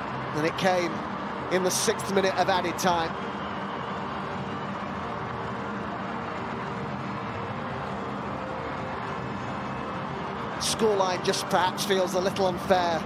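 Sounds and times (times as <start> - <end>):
stadium crowd noise: 0.0 - 13.0.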